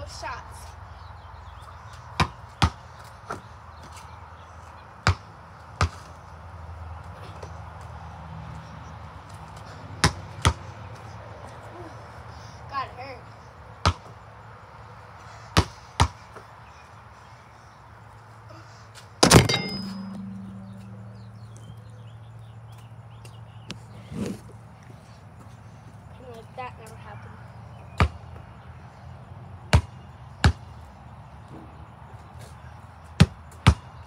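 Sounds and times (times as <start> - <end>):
basketball bouncing on concrete: 2.2 - 3.5, 5.0 - 6.1, 10.0 - 10.6, 13.8 - 14.2, 15.6 - 16.5, 19.2 - 22.0, 27.9 - 28.2, 29.7 - 30.6, 33.2 - 33.9.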